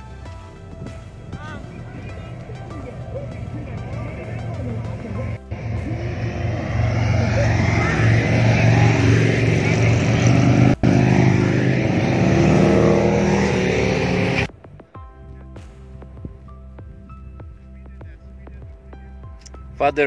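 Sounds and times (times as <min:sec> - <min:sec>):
motorcycles riding past: 0:02.1 - 0:14.5.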